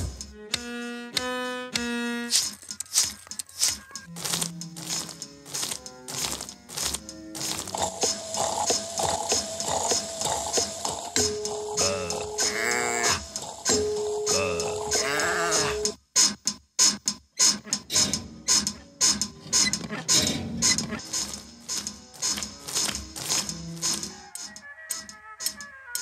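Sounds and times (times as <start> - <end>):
rhythmic clicks and knocks: 0.0 - 26.0.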